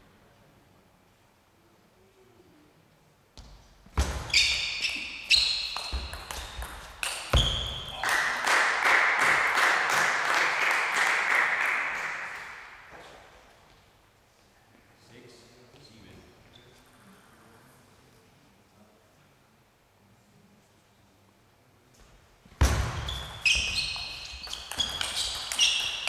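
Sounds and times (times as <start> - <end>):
table tennis ball hits: 5.6 - 8.0, 22.6 - 26.0
applause in large hall: 7.9 - 12.9.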